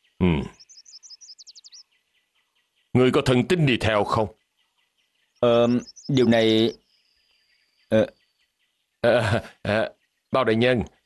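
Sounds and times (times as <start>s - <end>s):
songbird chirping and trilling: 0.0s - 11.0s
man grunting assent: 0.2s - 0.5s, 9.0s - 9.8s.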